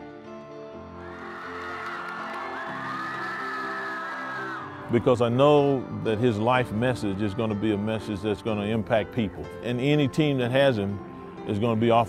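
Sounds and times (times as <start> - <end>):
stadium crowd cheering: 1.0 - 5.6.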